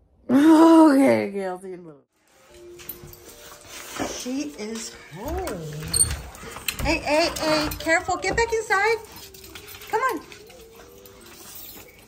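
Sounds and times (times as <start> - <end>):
dog whining: 5.1 - 12.0.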